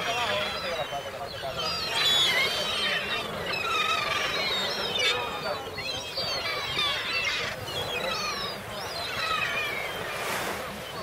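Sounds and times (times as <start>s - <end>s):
gulls calling: 0.0s - 11.0s.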